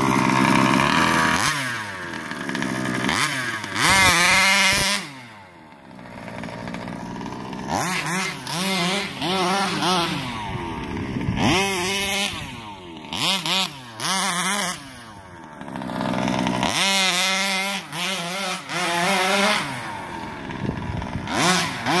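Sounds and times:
two-stroke engine revving: 0.0s - 22.0s.

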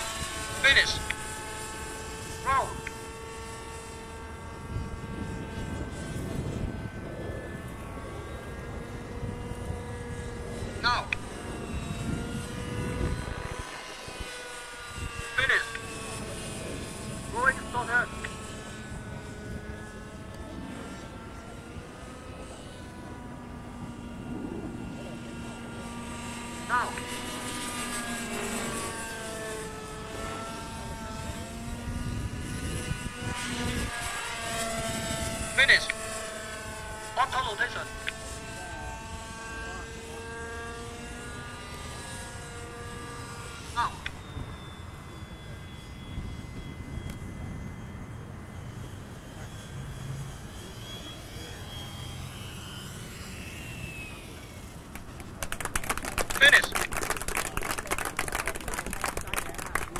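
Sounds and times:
model helicopter engine and rotors: 0.0s - 59.9s.

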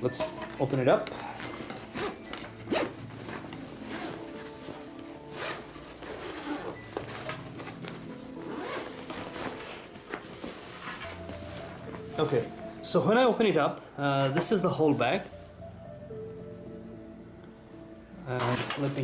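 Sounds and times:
zipper being pulled open: 1.4s - 4.3s, 5.3s - 9.8s.

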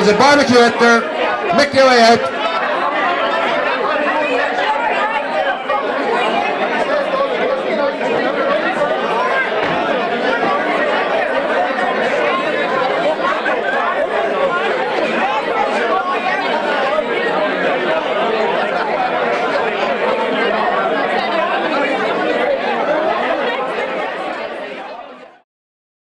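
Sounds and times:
crowd chatter: 0.0s - 25.4s.

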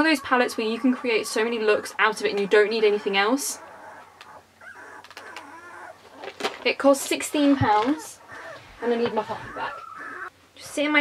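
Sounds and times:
puppy whimpering: 0.0s - 6.6s, 7.3s - 10.3s
soft clicks and rustles: 4.0s - 10.1s.

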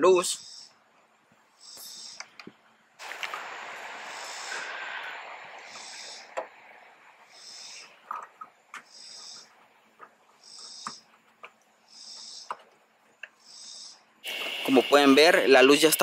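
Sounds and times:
high-pitched rasping call: 1.6s - 2.2s, 4.0s - 6.4s, 7.3s - 8.0s, 8.8s - 9.5s, 13.4s - 15.3s.

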